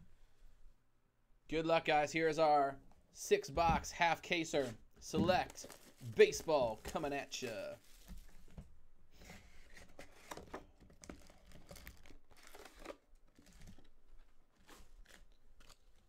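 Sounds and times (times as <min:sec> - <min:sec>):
packaging crinkling and rustling: 0:05.3 - 0:08.6, 0:09.6 - 0:16.0.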